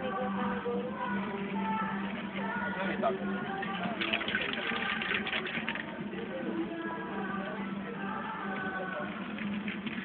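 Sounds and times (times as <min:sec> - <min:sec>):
background music: 0:00.0 - 0:10.0
voices: 0:00.0 - 0:10.0.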